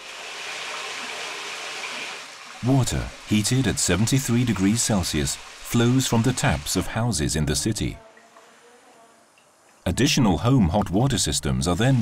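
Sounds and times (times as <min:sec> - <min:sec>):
water running from tap into bathtub: 0:00.0 - 0:06.9.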